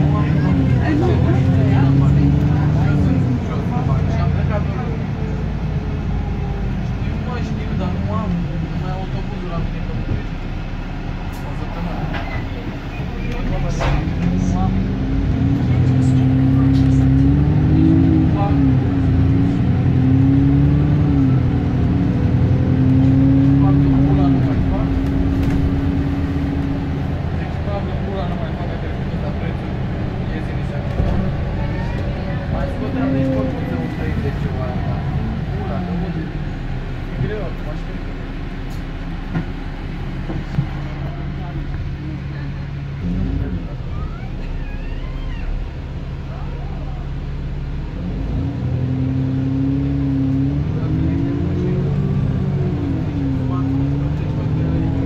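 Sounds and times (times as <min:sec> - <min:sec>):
bus diesel engine accelerating: 0:00.0 - 0:55.0
road and body noise: 0:00.0 - 0:55.0.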